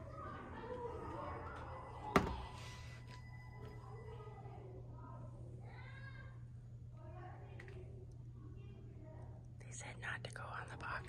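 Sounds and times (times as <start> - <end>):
faint voices: 0.0 - 11.0
steady low hum: 0.0 - 11.0.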